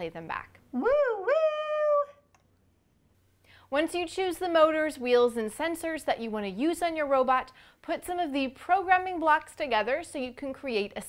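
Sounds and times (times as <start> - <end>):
woman shouting woo: 0.8 - 2.2.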